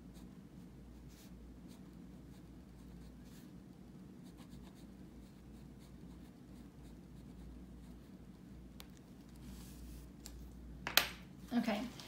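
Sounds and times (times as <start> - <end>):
marker pen scratching on paper: 0.0 - 3.6, 4.2 - 8.2.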